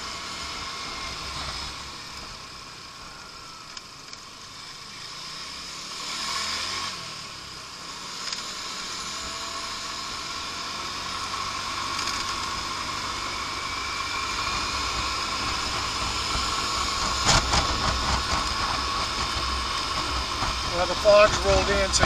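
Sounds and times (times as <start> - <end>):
scooter engine whining: 0.0 - 22.0
wind rumbling on microphone: 14.1 - 22.0.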